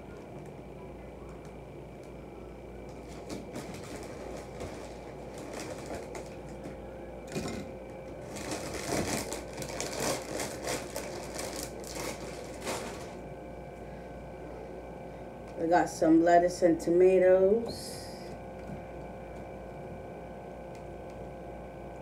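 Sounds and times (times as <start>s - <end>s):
plastic bag crinkling: 2.9s - 6.7s, 8.2s - 13.2s.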